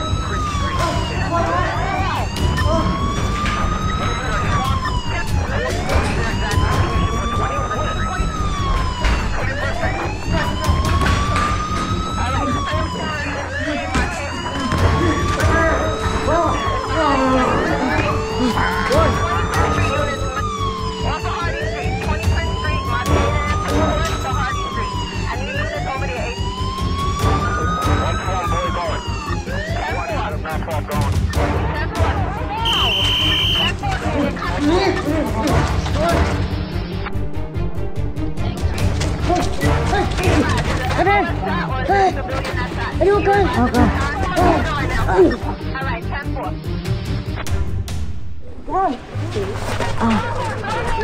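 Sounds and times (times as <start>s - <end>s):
police siren wailing: 0.0s - 47.4s, 49.5s - 51.0s
short high beep: 32.6s - 33.7s.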